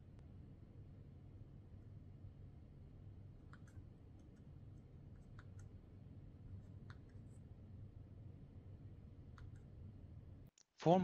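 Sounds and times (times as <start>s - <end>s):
low steady hum: 0.0s - 10.5s.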